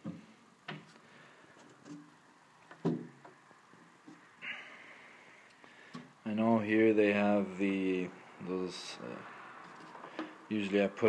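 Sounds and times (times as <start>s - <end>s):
man speaking: 6.2s - 9.3s, 10.5s - 11.0s.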